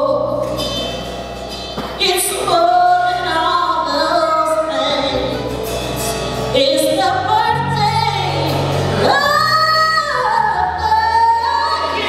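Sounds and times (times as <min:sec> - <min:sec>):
live band backing: 0:00.0 - 0:12.0
woman singing gospel: 0:02.0 - 0:05.4, 0:06.5 - 0:12.0.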